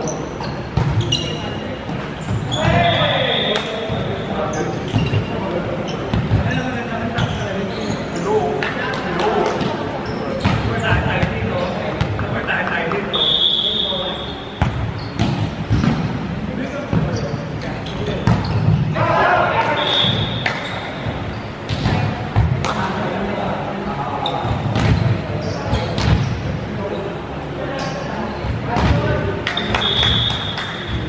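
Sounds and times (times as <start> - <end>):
players talking and calling out: 0.0 - 31.0.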